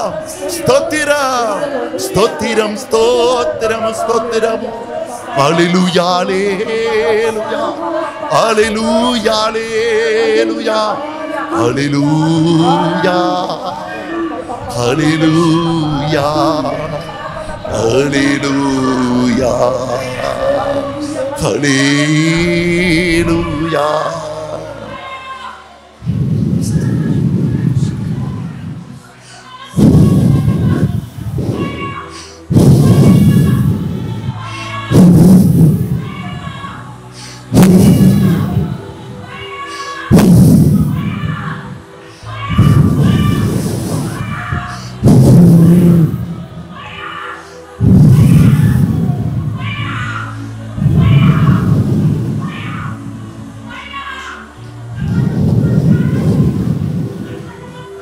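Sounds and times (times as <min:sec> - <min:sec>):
music through a pa: 0:00.0 - 0:25.4, 0:26.0 - 0:58.0
amplified vocal phrases: 0:00.0 - 0:58.0
booming thump: 0:29.8 - 0:30.6, 0:32.5 - 0:33.3, 0:34.9 - 0:36.0, 0:37.6 - 0:38.6, 0:40.1 - 0:41.0, 0:45.0 - 0:46.2.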